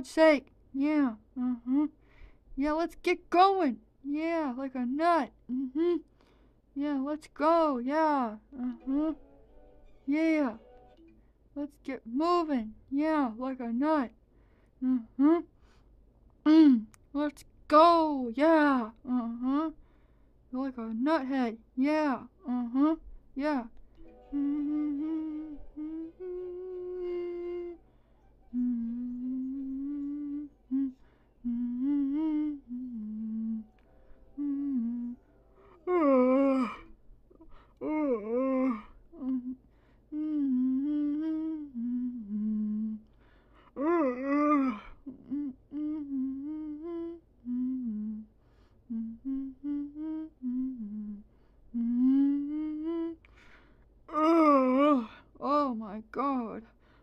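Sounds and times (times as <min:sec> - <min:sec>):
person humming held notes: 0:01.4 - 0:02.0, 0:05.5 - 0:06.1, 0:08.5 - 0:09.3, 0:22.4 - 0:23.1, 0:24.0 - 0:43.1, 0:43.8 - 0:48.3, 0:48.9 - 0:53.3.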